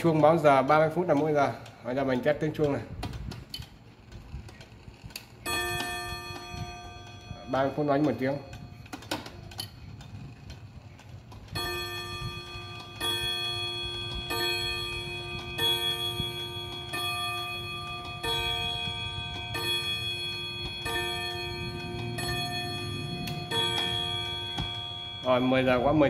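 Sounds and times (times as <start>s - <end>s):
clock gong striking: 11.6s - 26.0s.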